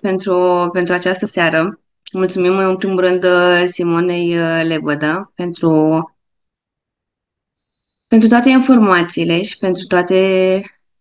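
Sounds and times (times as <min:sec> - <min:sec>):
faint thin high tone: 0:07.5 - 0:08.3.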